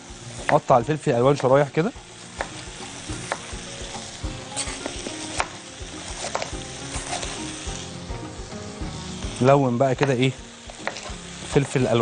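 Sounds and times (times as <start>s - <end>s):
potatoes sizzling in hot oil: 0.0s - 12.0s
knife chopping on wooden board: 2.4s - 2.6s, 3.3s - 3.5s, 10.8s - 11.7s.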